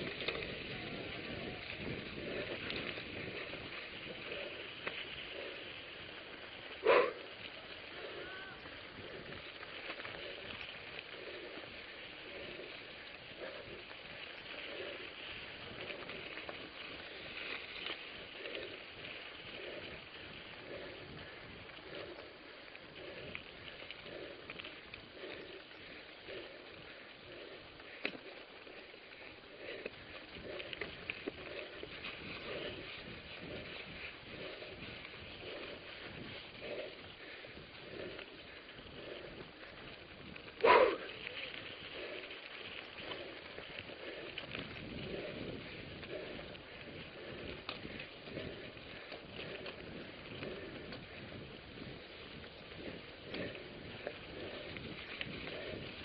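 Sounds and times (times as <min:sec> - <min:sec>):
bike tyres crackling on gravel: 0:00.0 - 0:56.0.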